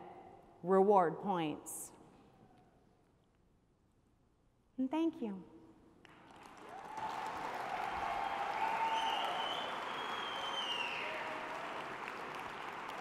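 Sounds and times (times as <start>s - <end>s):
audience applauding: 6.1s - 13.0s.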